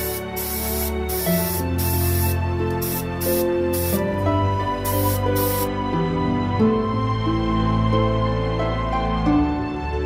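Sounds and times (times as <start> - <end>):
spray paint hissing in bursts: 0.0 - 4.2, 4.8 - 5.7
background music with held notes: 0.0 - 10.0.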